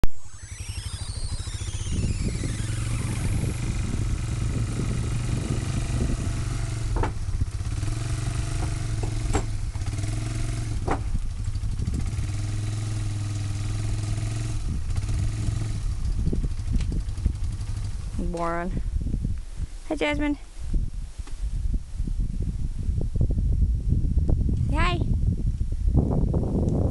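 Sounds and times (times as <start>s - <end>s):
atv engine running: 0.3s - 20.2s
sharp knocks: 6.1s - 7.3s, 8.3s - 10.0s, 10.8s - 11.2s.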